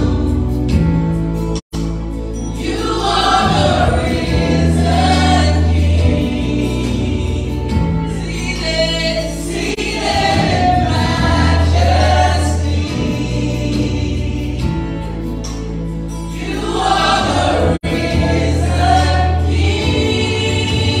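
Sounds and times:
group singing gospel: 2.4 - 21.0.

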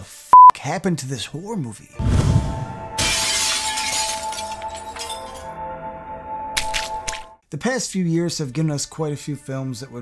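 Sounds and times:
glass shattering: 3.0 - 5.6, 6.6 - 7.3.

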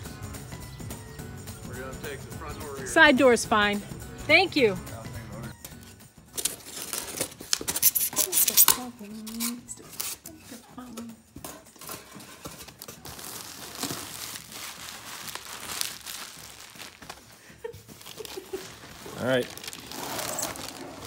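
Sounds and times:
plastic wrapping crinkling and tearing: 6.4 - 10.2, 12.6 - 21.0.

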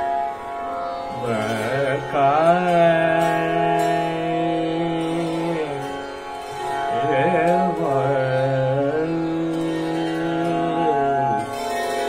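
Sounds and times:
man singing classical vocal: 1.1 - 12.0.

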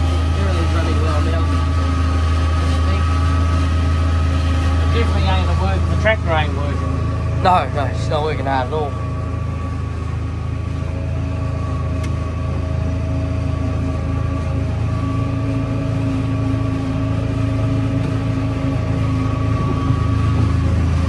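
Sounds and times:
tractor engine running under load: 0.0 - 21.0.

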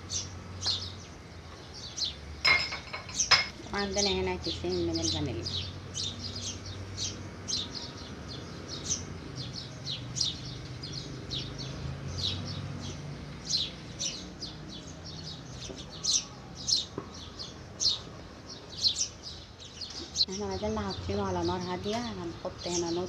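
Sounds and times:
small birds chirping: 0.0 - 23.0.

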